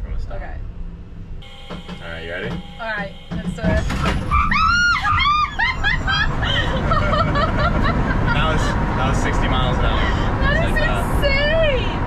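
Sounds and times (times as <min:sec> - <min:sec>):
passenger shrieking: 0:01.4 - 0:10.9
car engine accelerating hard: 0:05.8 - 0:12.0.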